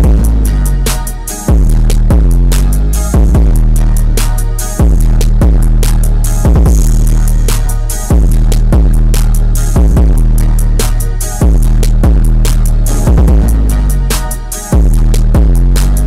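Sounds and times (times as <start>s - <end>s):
deep bass notes: 0.0s - 16.0s
fast hi-hat clicks: 0.0s - 16.0s.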